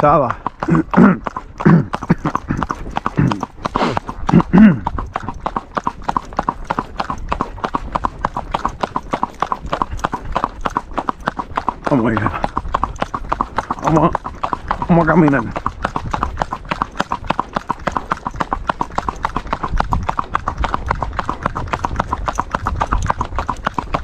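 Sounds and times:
hoofbeats on asphalt: 0:00.0 - 0:24.0.

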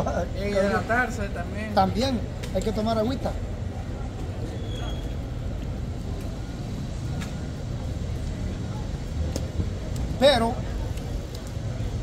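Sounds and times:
road traffic rumble: 0:00.0 - 0:12.0.

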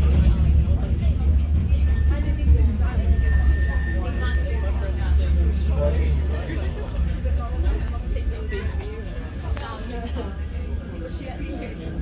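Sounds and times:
tram rumble from inside: 0:00.0 - 0:12.0.

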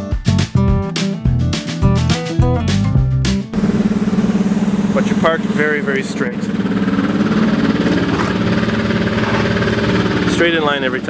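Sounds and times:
vehicle engine idling: 0:03.5 - 0:11.0.

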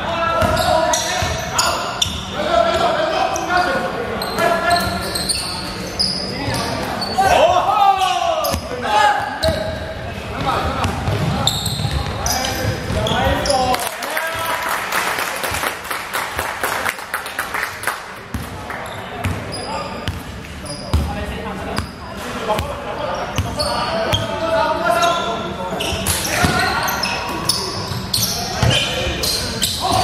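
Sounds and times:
sneaker squeaks on hardwood: 0:00.4 - 0:02.3, 0:04.2 - 0:07.4, 0:09.3 - 0:09.9, 0:11.1 - 0:13.7, 0:19.2 - 0:21.1, 0:22.6 - 0:30.0.

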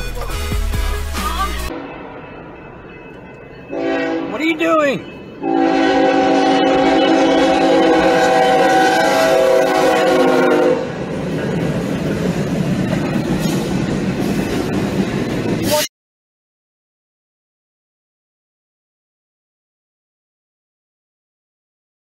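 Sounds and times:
freight train rumble and wheel clatter: 0:00.0 - 0:15.9
train air horn blasts: 0:03.7 - 0:04.4, 0:05.4 - 0:11.0.

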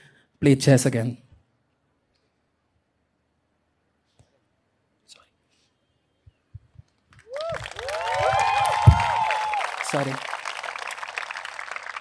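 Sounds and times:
whoops and cheers: 0:07.2 - 0:10.0
audience applause: 0:07.2 - 0:12.0
thump: 0:08.8 - 0:09.1.

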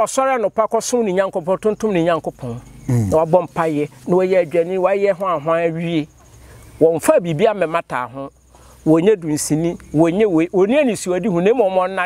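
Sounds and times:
person speaking: 0:01.5 - 0:06.1.

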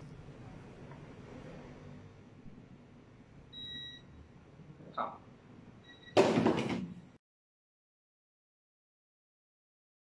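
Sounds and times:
sudden loud knock or slam: 0:06.2 - 0:07.0.

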